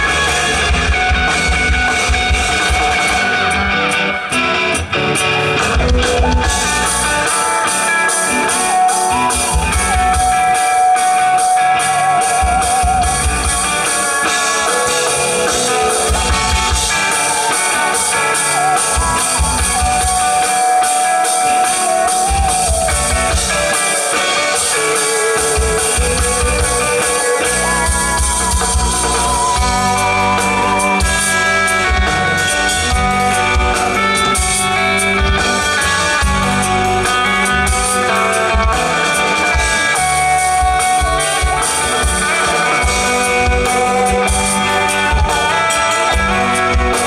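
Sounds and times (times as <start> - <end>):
drum kit with cymbals: 0.0 - 47.0
electric guitar: 0.0 - 47.0
keyboard: 0.0 - 47.0.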